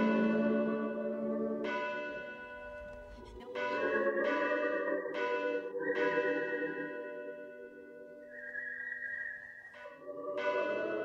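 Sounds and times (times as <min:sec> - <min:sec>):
bell tones ringing: 0:00.0 - 0:11.0.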